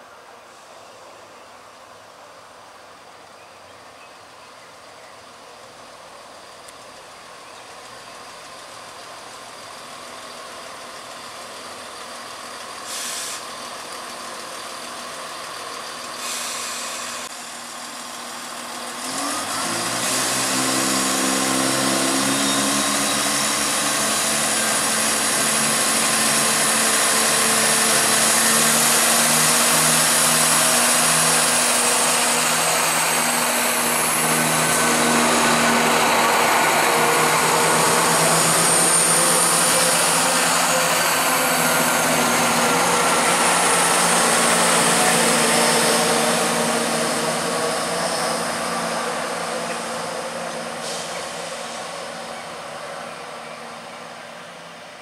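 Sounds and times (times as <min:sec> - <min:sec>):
train passing with high whine: 0:00.0 - 0:55.0
short hisses: 0:12.9 - 0:13.5, 0:16.2 - 0:17.2, 0:50.8 - 0:52.0.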